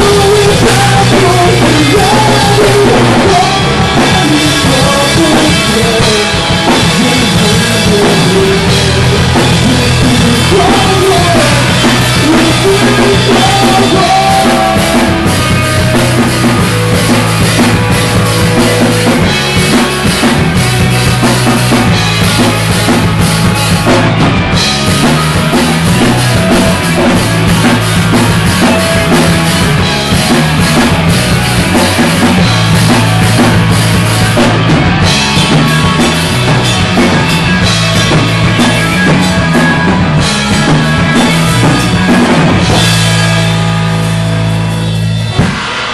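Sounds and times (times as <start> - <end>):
drum kit: 0.0 - 45.9
held bass notes: 0.0 - 45.9
rock band playing live: 0.0 - 45.9.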